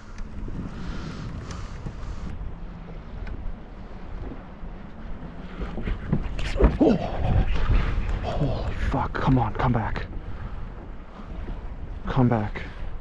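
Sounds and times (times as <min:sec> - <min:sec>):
faint clicks: 0:00.0 - 0:00.4, 0:01.3 - 0:02.4, 0:03.2 - 0:03.4
choppy water around boat: 0:00.0 - 0:13.0
wind rumbling on microphone: 0:00.0 - 0:13.0.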